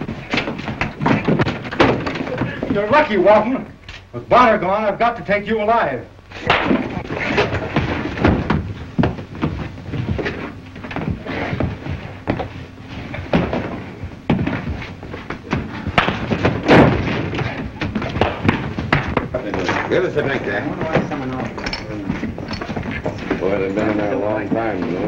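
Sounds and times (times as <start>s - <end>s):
fistfight thuds and slams: 13.3s - 19.3s.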